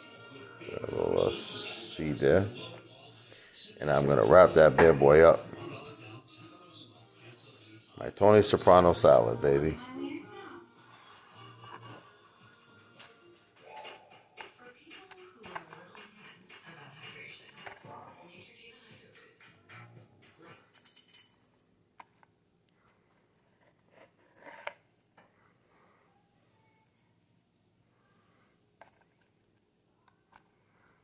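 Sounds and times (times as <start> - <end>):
faint background music: 0.0 - 31.0.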